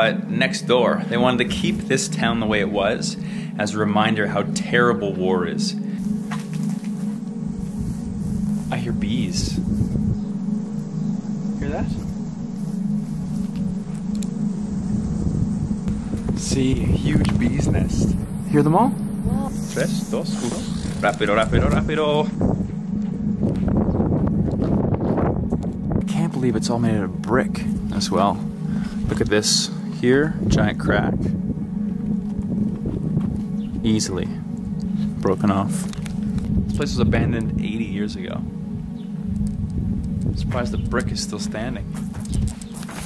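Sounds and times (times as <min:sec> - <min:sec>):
bees buzzing: 0:00.0 - 0:43.0
wind rumble on microphone: 0:06.1 - 0:43.0.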